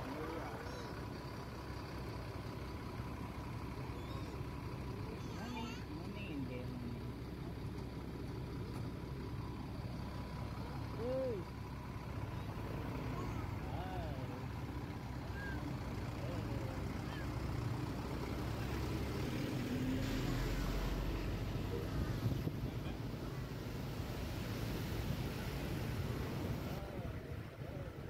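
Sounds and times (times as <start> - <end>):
diesel bus engine rumbling: 0.0 - 28.0.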